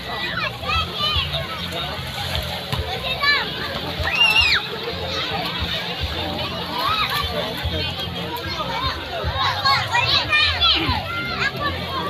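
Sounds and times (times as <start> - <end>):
babble of voices: 0.0 - 12.0
children shouting while playing: 3.2 - 5.2, 9.3 - 12.0.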